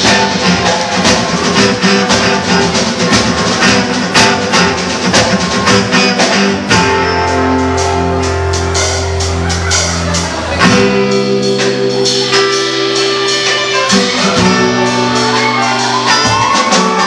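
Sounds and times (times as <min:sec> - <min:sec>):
strummed acoustic guitar: 0:00.0 - 0:08.5
drum and cymbal beat: 0:00.0 - 0:17.0.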